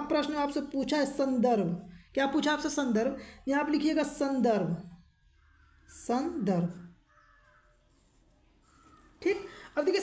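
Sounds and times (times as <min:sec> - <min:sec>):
distant bird calls: 0:04.1 - 0:10.0.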